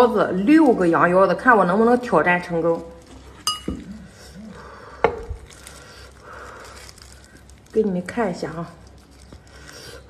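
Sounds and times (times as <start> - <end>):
knife clinking on dish: 3.4 - 3.9.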